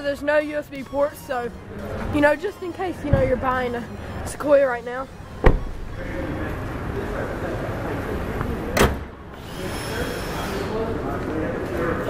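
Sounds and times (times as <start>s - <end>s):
garage background noise: 0.0s - 12.0s.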